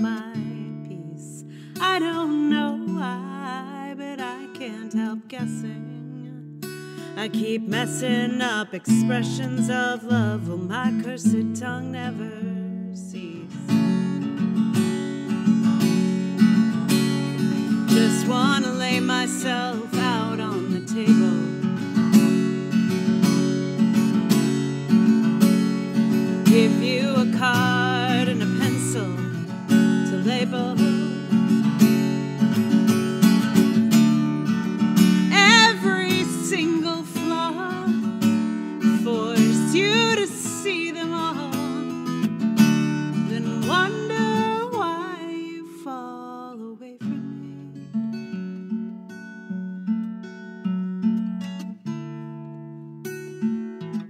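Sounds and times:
woman singing: 0.0s - 14.2s, 17.4s - 21.8s, 26.1s - 32.0s, 35.1s - 42.2s, 43.1s - 47.9s
acoustic guitar playing: 0.0s - 54.0s.

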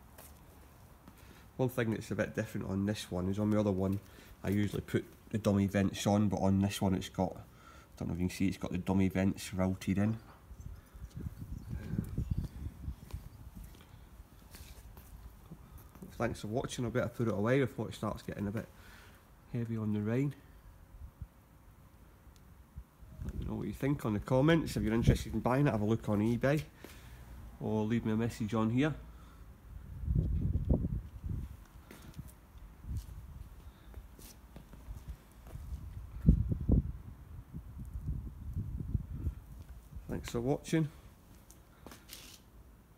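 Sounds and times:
footsteps on paving slabs: 0.0s - 1.4s, 3.0s - 5.3s, 11.8s - 16.1s, 31.6s - 35.8s, 41.3s - 42.4s.

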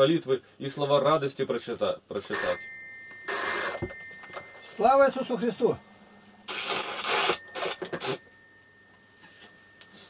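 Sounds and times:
bell-like ring: 2.3s - 6.2s, 7.0s - 10.0s.

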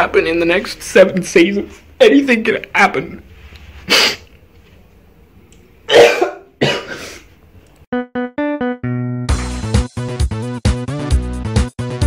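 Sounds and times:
man coughing: 5.9s - 7.3s.

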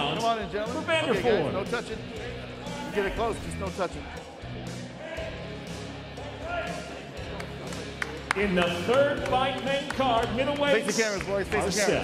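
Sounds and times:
man speaking over public address: 0.0s - 4.1s, 8.3s - 12.0s
background music: 0.0s - 12.0s.

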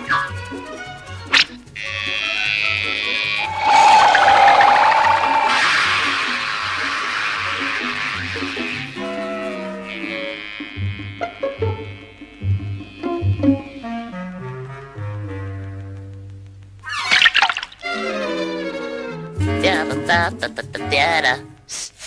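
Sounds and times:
wavering held tone: 3.4s - 7.6s
rushing hissing sound effect: 3.4s - 8.0s.

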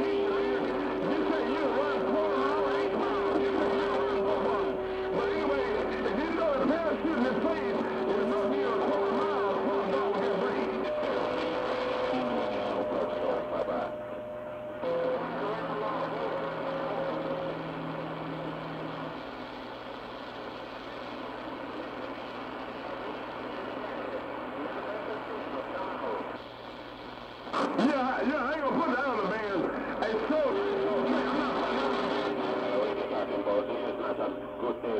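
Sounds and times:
garbled distant radio voices: 0.0s - 34.9s
radio static hiss: 0.0s - 34.9s.

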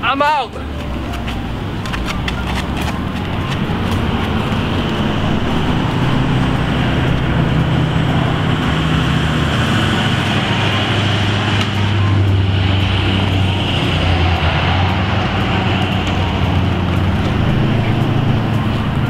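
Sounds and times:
traffic rumble: 0.0s - 19.0s
low engine hum: 0.5s - 19.0s.

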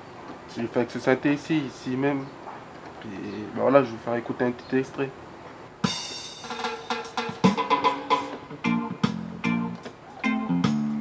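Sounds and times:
drum beat: 5.8s - 9.3s
electronic keyboard chords and melody: 5.8s - 11.0s.

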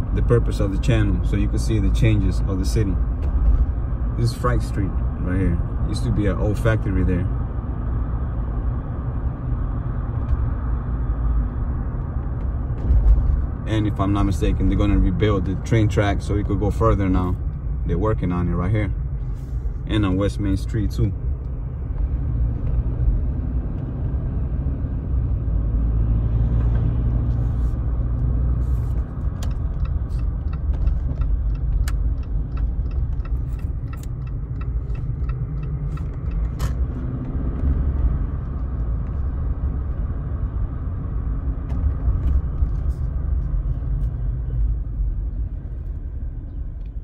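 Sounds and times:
car road and engine noise: 0.0s - 47.0s.

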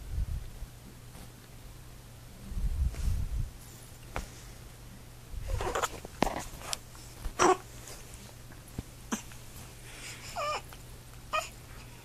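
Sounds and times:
newborn baby crying: 10.2s - 10.7s, 11.3s - 11.6s.

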